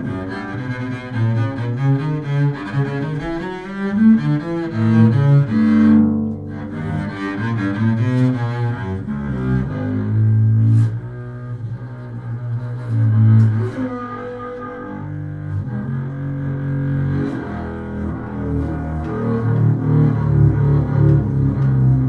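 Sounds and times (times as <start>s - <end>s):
double bass played with bow: 0.0s - 22.0s.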